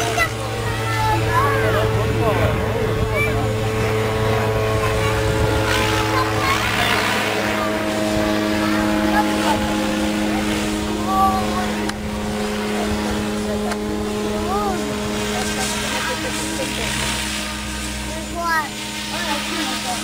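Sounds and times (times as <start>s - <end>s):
model helicopter rotor hum: 0.0s - 20.0s.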